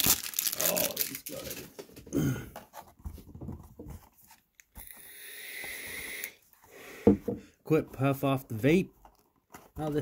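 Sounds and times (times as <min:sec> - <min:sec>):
vape drag hiss: 0:05.0 - 0:06.4.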